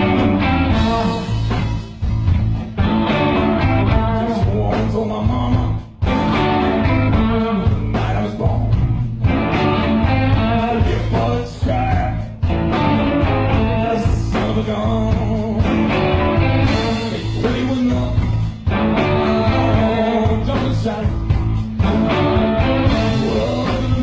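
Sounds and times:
rock band playing blues: 0.0 - 24.0.

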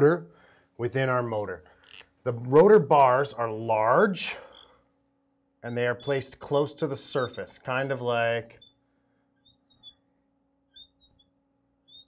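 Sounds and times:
faint room hum: 0.0 - 12.0
marker squeaking on glass: 3.9 - 4.8, 5.6 - 8.8, 9.4 - 10.1, 10.7 - 12.0.

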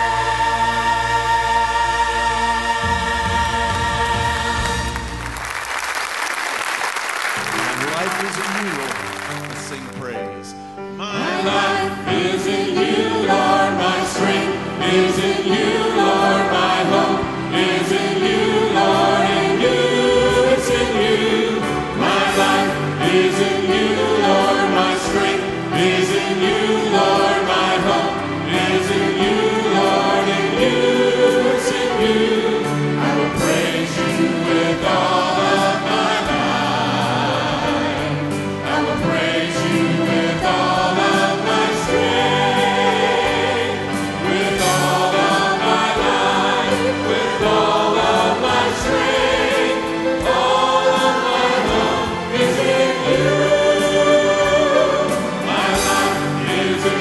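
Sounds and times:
gospel choir singing: 0.0 - 9.6, 11.0 - 57.0.

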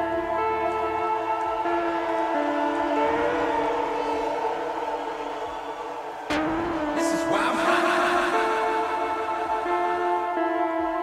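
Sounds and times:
sustained synth chords: 0.0 - 11.0.

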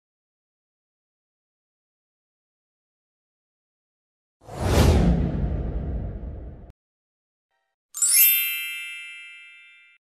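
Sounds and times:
bright bell-like ding: 8.0 - 10.0.

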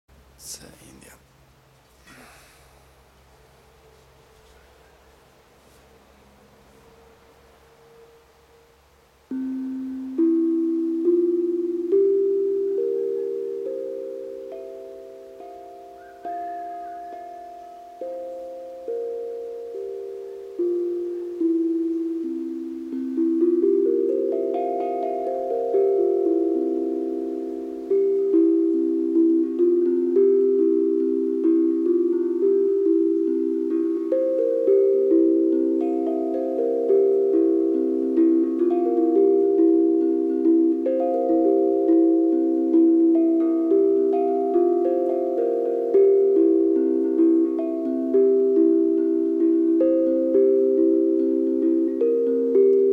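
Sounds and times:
steel tongue drum notes ringing: 0.1 - 52.9.

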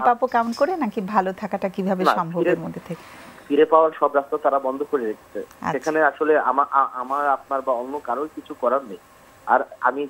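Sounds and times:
person talking over telephone: 1.9 - 2.7.

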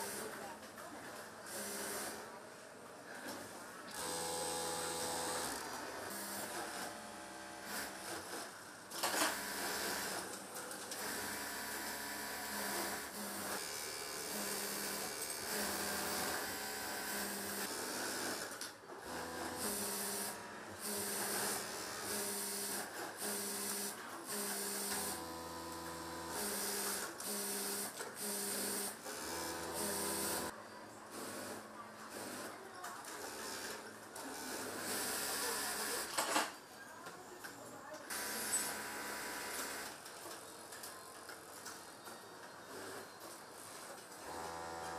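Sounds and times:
sewing machine motor hum: 3.9 - 8.2, 11.0 - 30.5, 44.2 - 44.9
sewing machines stitching: 3.9 - 30.5.

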